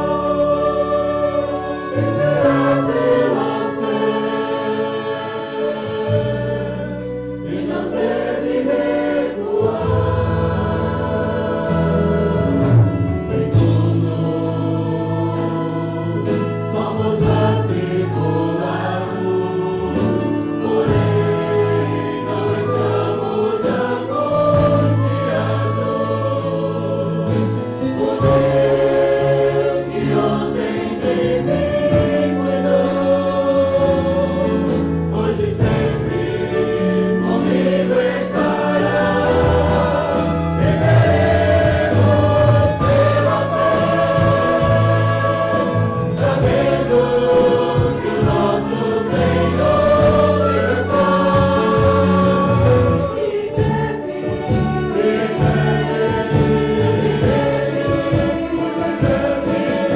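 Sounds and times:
group singing a hymn: 0.0 - 59.9
keyboard: 0.0 - 59.9.

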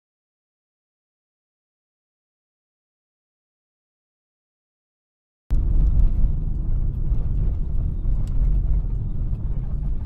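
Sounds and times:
car driving on slushy road: 5.6 - 10.0.

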